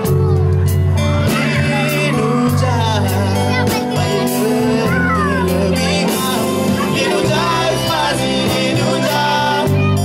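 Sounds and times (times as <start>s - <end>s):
live band music: 0.0s - 10.0s.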